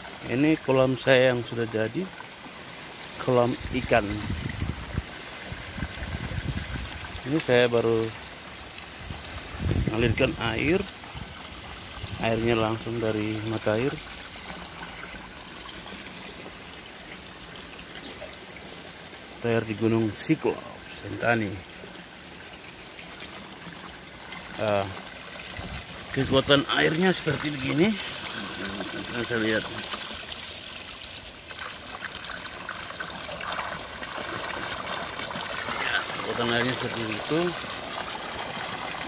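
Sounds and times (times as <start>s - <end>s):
water pouring from pipe into pond: 0.0s - 39.0s.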